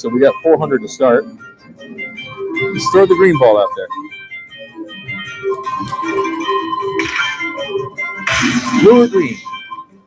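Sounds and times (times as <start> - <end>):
held electronic tone: 1.8 - 9.8
slot machine chiming jingle: 1.9 - 10.0.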